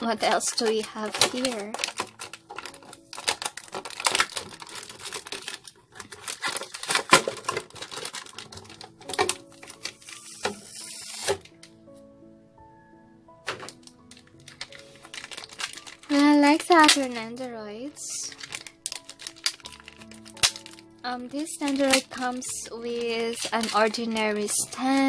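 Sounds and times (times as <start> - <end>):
plastic parts clicking and clattering: 0.0 - 11.8, 13.4 - 25.0
soft background music: 0.0 - 25.0
packaging rustle: 0.2 - 11.8, 13.4 - 25.0.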